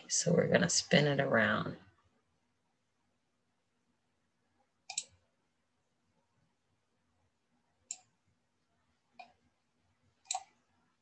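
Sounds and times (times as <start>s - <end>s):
computer mouse click: 4.9s - 5.2s, 7.9s - 8.1s, 9.2s - 9.4s, 10.2s - 10.6s.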